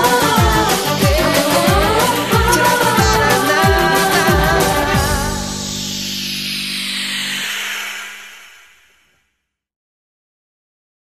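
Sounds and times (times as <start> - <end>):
hissing cymbal wash: 0.8 - 9.1
held low notes: 1.8 - 9.0.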